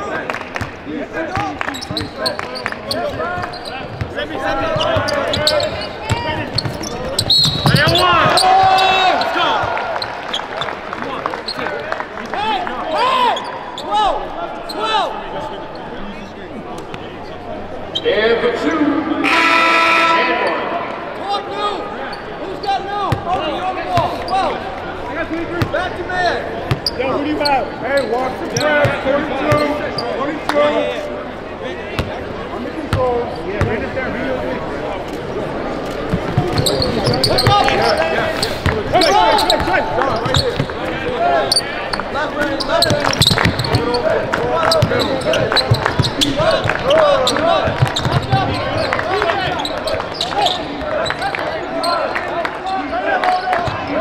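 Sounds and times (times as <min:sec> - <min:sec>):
indistinct voices in arena: 0:00.0 - 0:54.0
loud pitched call: 0:19.2 - 0:20.8.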